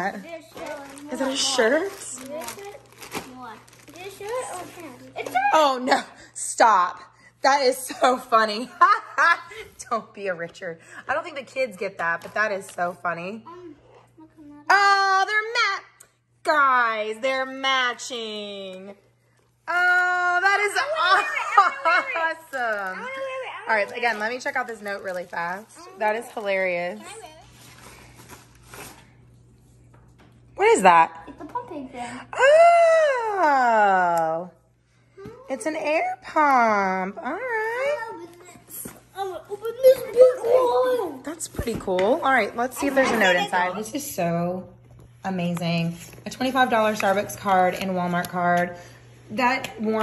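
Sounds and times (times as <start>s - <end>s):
plastic bag rustling: 0.0s - 5.3s, 22.4s - 29.2s.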